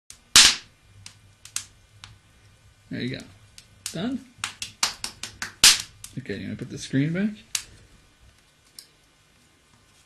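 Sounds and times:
fire popping: 0:00.1 - 0:08.9
loud bang from fireplace: 0:00.3 - 0:00.7.

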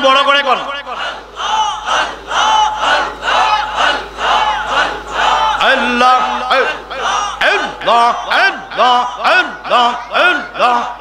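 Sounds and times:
congregation chanting: 0:00.0 - 0:11.0.

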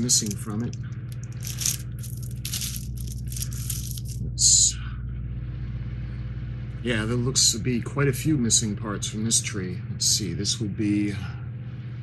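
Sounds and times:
plastic bag crinkling: 0:00.0 - 0:04.2
low steady hum: 0:00.0 - 0:12.0.

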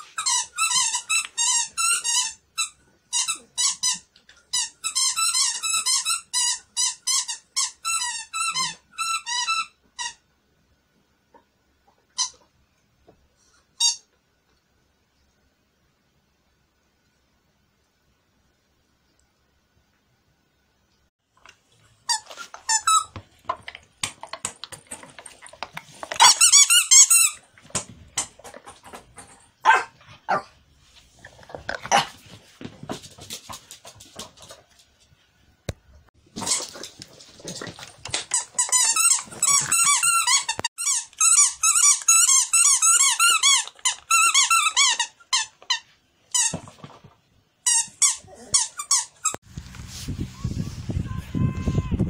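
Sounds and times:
squeaky dog toy squeaking: 0:00.1 - 0:10.2, 0:13.8 - 0:14.1, 0:22.1 - 0:23.2, 0:26.2 - 0:27.4, 0:38.3 - 0:46.6.

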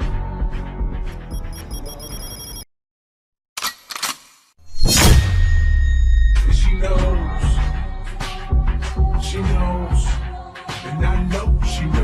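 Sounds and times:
electronic bell ringing: 0:01.2 - 0:02.7.

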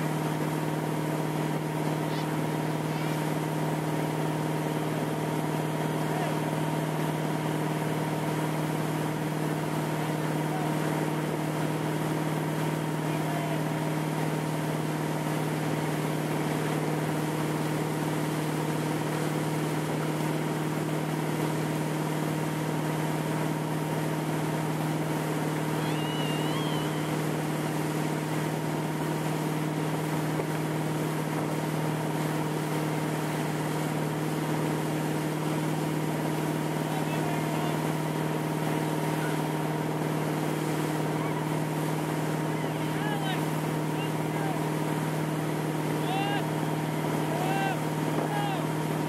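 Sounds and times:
motorboat engine droning: 0:00.0 - 0:49.0
rush of wake water: 0:00.0 - 0:49.0.

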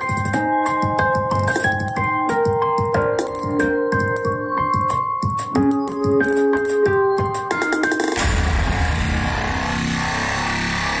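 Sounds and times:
loud live music with heavy bass: 0:08.2 - 0:11.0.

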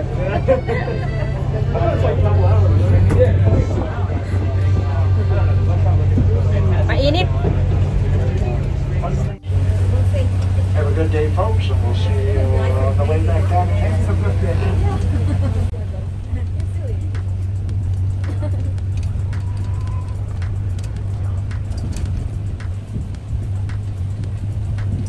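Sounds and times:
bus engine and road drone: 0:00.0 - 0:25.0
voices: 0:00.0 - 0:25.0
faint clicks and rattles: 0:16.3 - 0:25.0.

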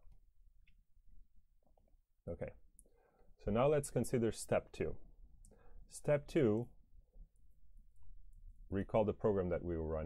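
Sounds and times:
man speaking: 0:02.2 - 0:02.7, 0:03.4 - 0:05.1, 0:05.9 - 0:06.8, 0:08.7 - 0:10.0.

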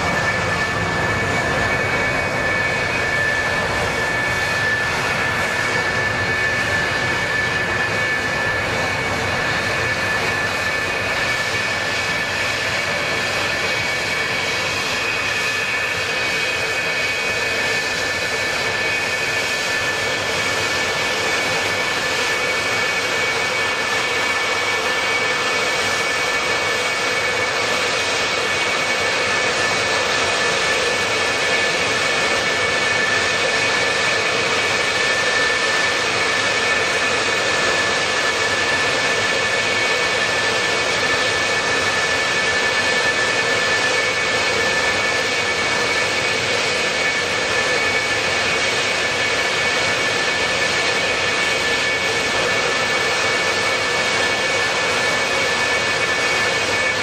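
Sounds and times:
jet engines idling: 0:00.0 - 0:57.0.

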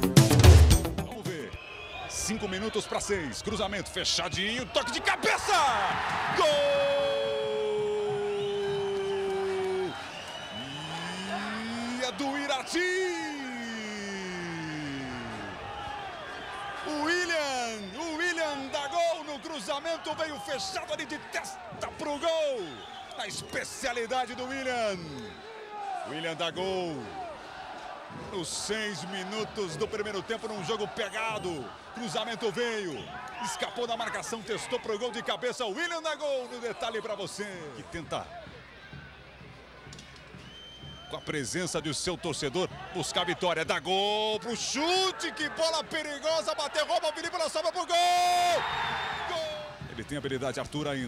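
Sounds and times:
commentator shouting: 0:04.7 - 0:09.9.

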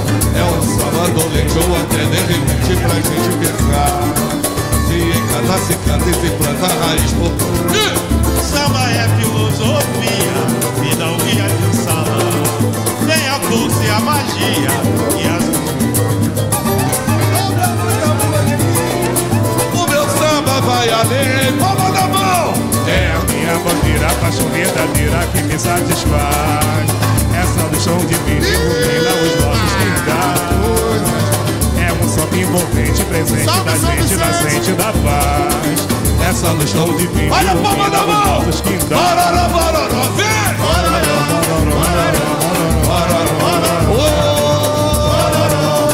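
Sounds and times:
acoustic guitar: 0:00.0 - 0:45.9
cavaquinho strumming: 0:00.0 - 0:45.9
fast hand percussion: 0:00.0 - 0:45.9
person singing: 0:00.0 - 0:45.9
samba band playing: 0:00.0 - 0:45.9.

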